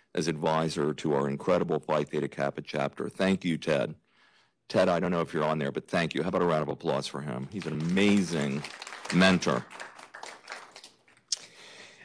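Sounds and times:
light applause: 0:07.4 - 0:11.4.

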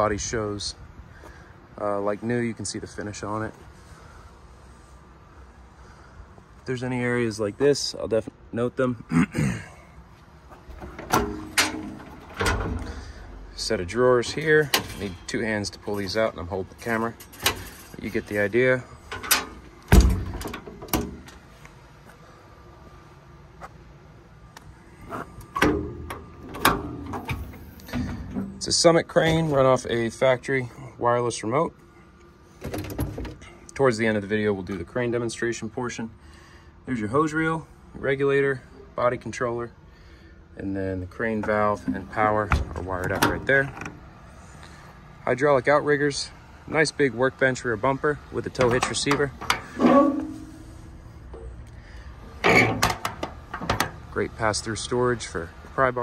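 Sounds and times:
metal door clunks: 0:10.7 - 0:13.1, 0:19.1 - 0:21.3, 0:25.5 - 0:28.6, 0:32.6 - 0:33.4, 0:41.5 - 0:44.0, 0:48.6 - 0:51.5, 0:52.4 - 0:54.0.

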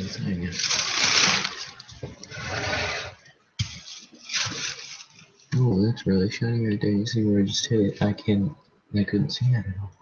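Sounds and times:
plastic bag crinkling: 0:00.0 - 0:02.3, 0:03.6 - 0:05.6.

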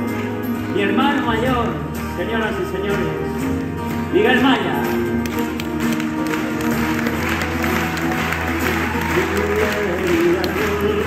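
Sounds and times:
acoustic guitar playing: 0:00.0 - 0:11.0
audience applauding: 0:05.1 - 0:11.0.

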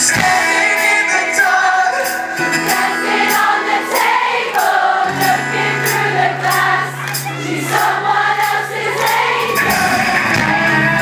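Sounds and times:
crowd singing together: 0:00.0 - 0:11.0
pop-rock band playing: 0:00.0 - 0:11.0
steady drum beat: 0:00.0 - 0:11.0.

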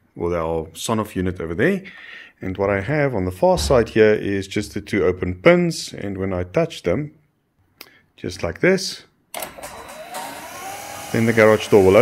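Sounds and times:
garage door opener motor: 0:09.4 - 0:12.0.

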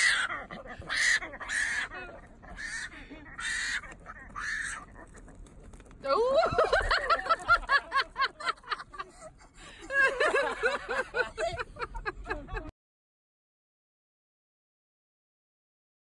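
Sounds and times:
peccary squealing: 0:00.0 - 0:05.4
person laughing: 0:06.1 - 0:12.7.

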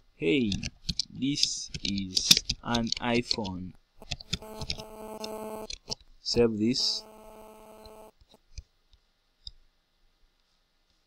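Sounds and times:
steady electrical hum: 0:02.3 - 0:08.8.

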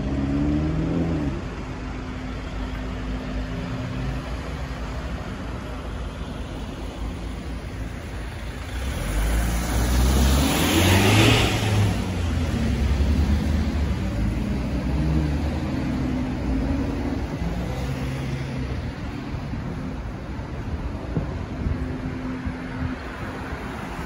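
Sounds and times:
car pulling away and passing: 0:00.0 - 0:24.0
steady traffic noise: 0:00.0 - 0:24.0.

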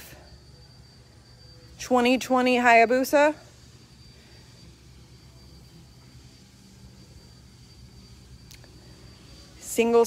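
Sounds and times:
faint low hum: 0:00.0 - 0:10.0
thin high-pitched whine: 0:00.0 - 0:10.0.

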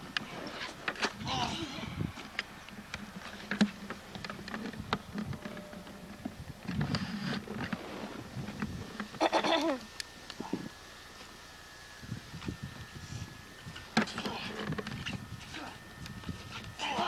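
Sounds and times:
person crying out: 0:01.2 - 0:02.1, 0:16.8 - 0:17.0.

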